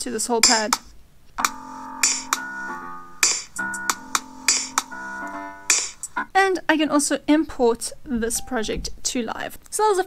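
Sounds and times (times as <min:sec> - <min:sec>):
held keyboard chords: 0:01.4 - 0:06.3
drum hits: 0:03.2 - 0:03.8, 0:05.7 - 0:06.1.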